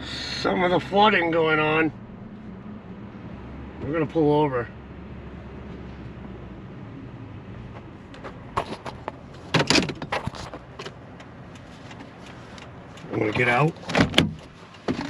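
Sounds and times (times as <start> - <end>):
low rumble inside truck cab: 0.0 - 15.0
sharp clicks and knocks: 8.1 - 15.0.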